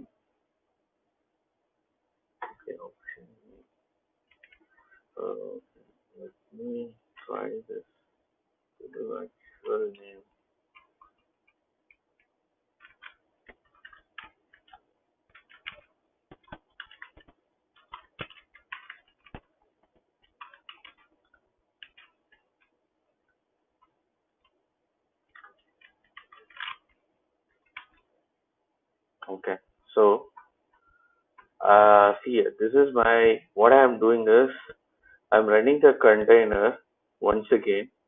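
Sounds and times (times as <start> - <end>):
computer keyboard typing: 4.3 - 4.9, 10.7 - 22.8, 25.3 - 27.0, 27.6 - 28.1.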